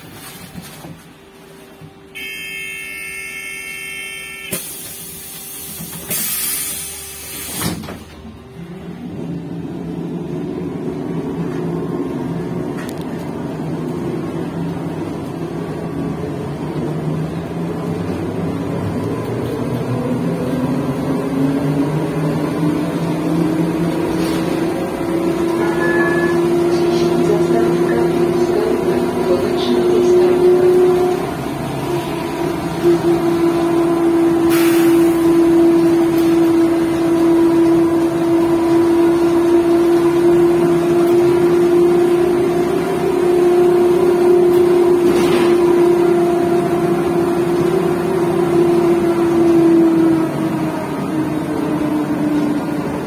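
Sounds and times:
high electronic tone: 0:02.2 - 0:04.7
bus doors closing: 0:04.2 - 0:09.5, 0:22.1 - 0:53.0.

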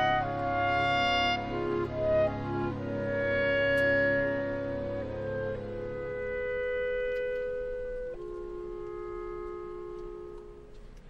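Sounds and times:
orchestra sustained chords: 0:00.0 - 0:11.0.

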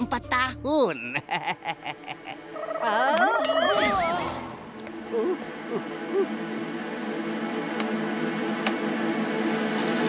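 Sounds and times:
droning chord: 0:04.5 - 0:10.0.

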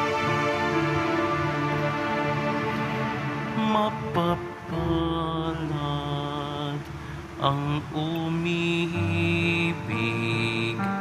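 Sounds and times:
steady low note: 0:00.0 - 0:07.0.

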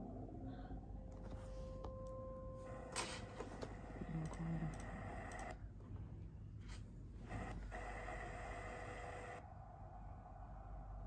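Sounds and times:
low hum: 0:00.0 - 0:11.0
droning tones: 0:07.2 - 0:11.0.

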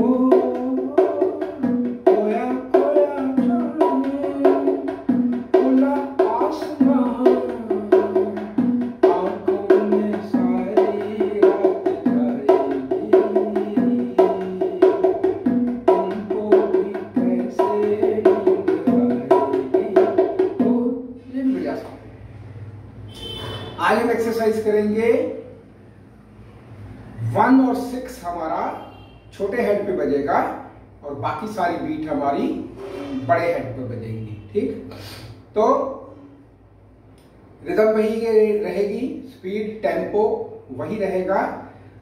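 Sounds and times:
bongos played by hand: 0:00.0 - 0:22.1.

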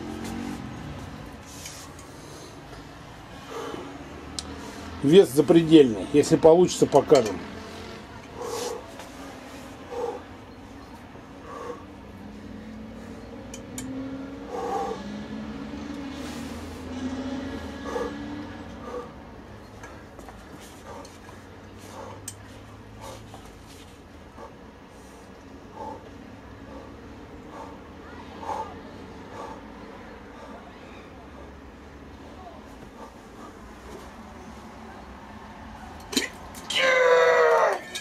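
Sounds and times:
man grunting and breathing hard: 0:02.0 - 0:07.4, 0:08.2 - 0:13.3, 0:14.3 - 0:23.4, 0:24.1 - 0:34.3
man groaning: 0:36.7 - 0:37.8.

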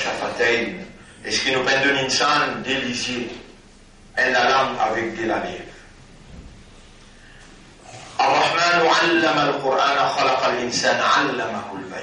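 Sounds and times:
man reciting verses: 0:00.0 - 0:06.0, 0:07.9 - 0:12.0.

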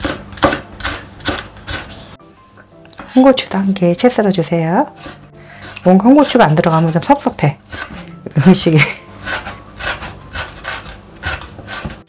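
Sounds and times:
knife slicing on wooden board: 0:00.0 - 0:02.1, 0:04.0 - 0:08.2, 0:09.2 - 0:12.0.

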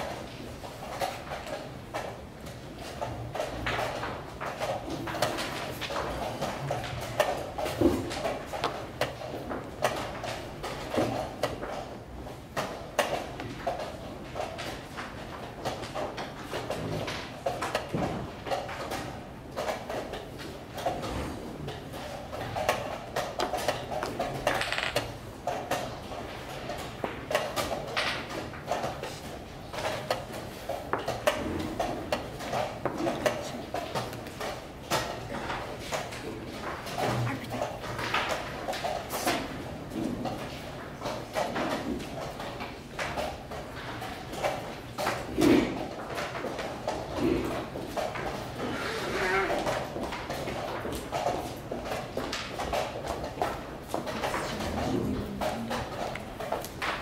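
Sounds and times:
chess pieces clacking on boards: 0:00.0 - 0:57.0.

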